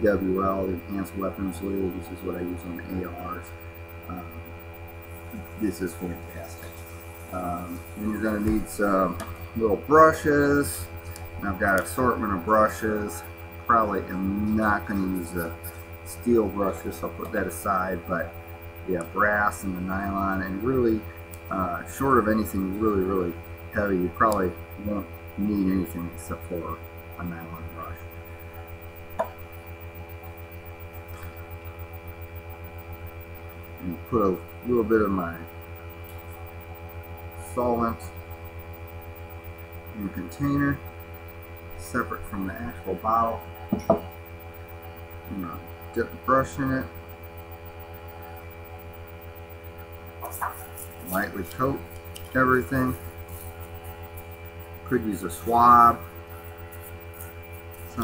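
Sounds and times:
electrical mains hum: 0.0 - 58.0.

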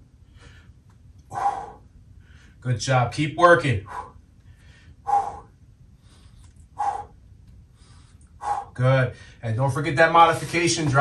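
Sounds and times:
man grunting with forceful breaths: 1.3 - 1.9.

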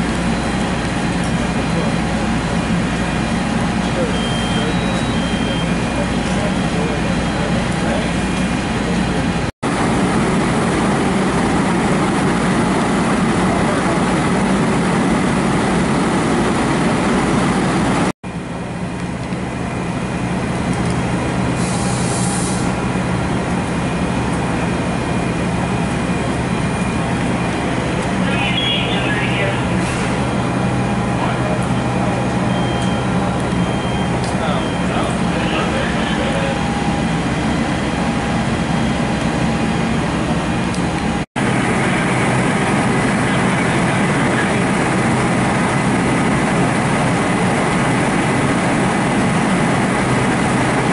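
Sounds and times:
diesel engine running: 0.0 - 50.9
faint voices: 28.2 - 29.9, 34.3 - 36.7.

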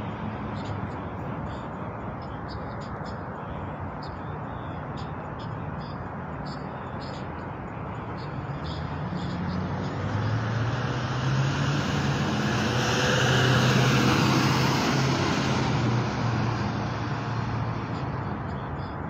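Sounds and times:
vehicle passing by: 8.4 - 18.6.

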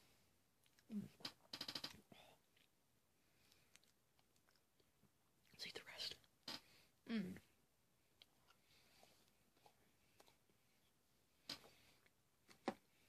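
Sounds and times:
wet chewing clicks: 3.4 - 4.9.

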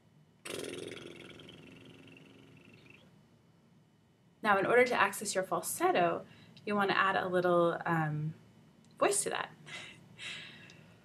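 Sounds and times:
person doing a lip trill: 0.4 - 3.1.

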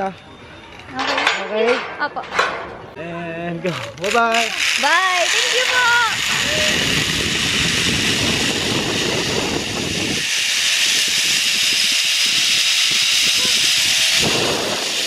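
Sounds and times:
trolley hissing along steel cable: 4.5 - 15.0
wind buffeting microphone: 4.7 - 15.0.

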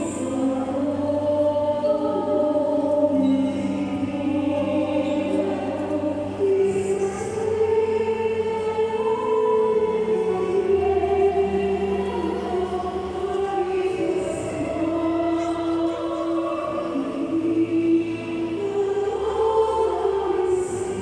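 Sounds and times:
choir singing a hymn: 0.0 - 21.0
low sustained accompaniment: 0.0 - 21.0.

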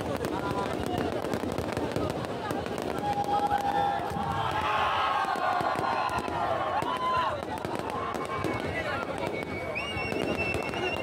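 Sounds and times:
crowd shouting and chatter: 0.0 - 11.0
fireworks popping and crackling: 0.0 - 11.0.

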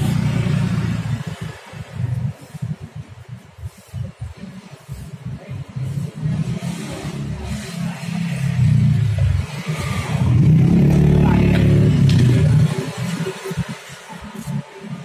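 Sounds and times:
vehicle engine revving: 0.0 - 2.5, 5.6 - 15.0.

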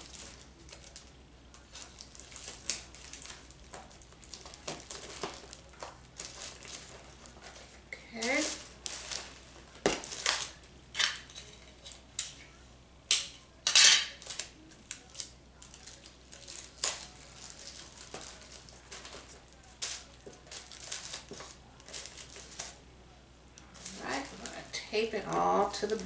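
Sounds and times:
crinkling and rustling paper: 0.0 - 12.0, 14.0 - 22.8, 23.6 - 26.0.

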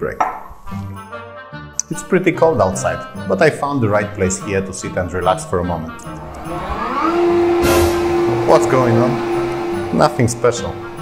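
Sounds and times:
rushing air noise: 6.1 - 11.0
pump humming: 6.2 - 11.0
hissing air burst: 6.7 - 10.3.

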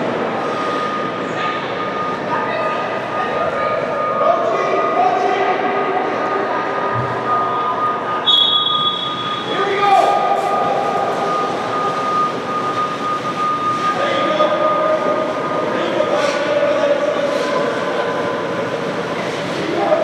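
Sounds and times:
constant high tone: 0.0 - 20.0
mechanical hum: 0.0 - 20.0.

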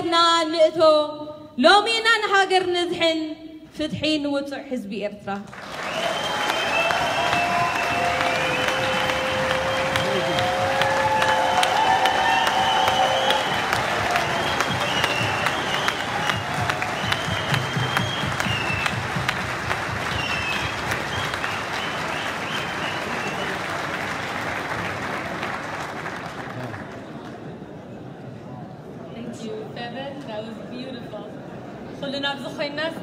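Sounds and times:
audience applauding: 5.5 - 27.4.

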